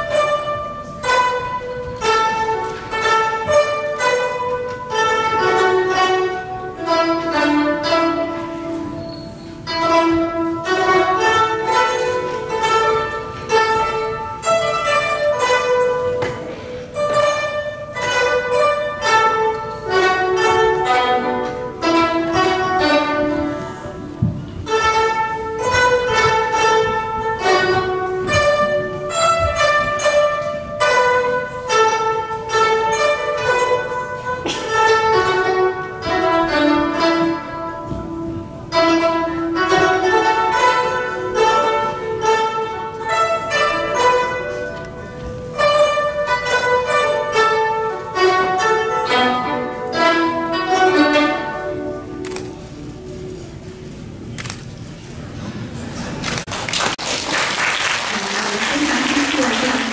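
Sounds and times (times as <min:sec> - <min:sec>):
zithers playing a melody: 0:00.0 - 0:57.0, 0:58.1 - 0:59.9.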